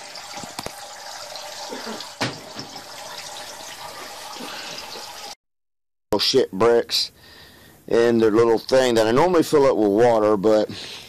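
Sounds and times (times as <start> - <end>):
water splashing into tank: 0.0 - 5.4.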